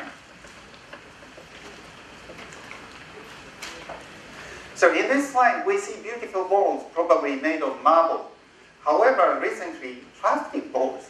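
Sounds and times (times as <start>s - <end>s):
microphone hiss: 0.0s - 11.0s.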